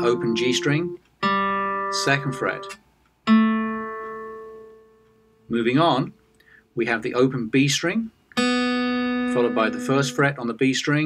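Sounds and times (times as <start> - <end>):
acoustic guitar note ringing: 0.0 - 6.1, 8.3 - 10.4.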